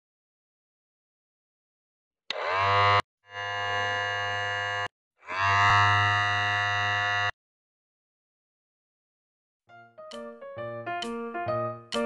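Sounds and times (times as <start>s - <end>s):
electronic buzzing with falling sweep: 2.7s - 7.3s.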